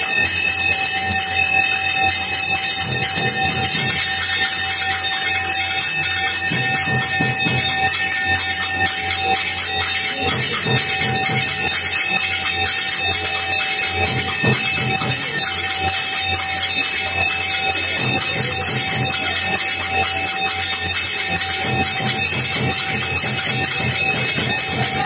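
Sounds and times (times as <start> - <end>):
temple bells ringing rapidly: 0.0 - 25.0.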